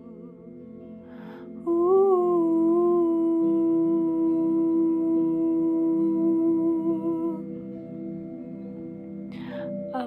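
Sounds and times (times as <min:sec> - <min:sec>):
soft sustained accompaniment: 0:00.0 - 0:10.0
woman breathing in: 0:01.0 - 0:01.6, 0:09.3 - 0:09.9.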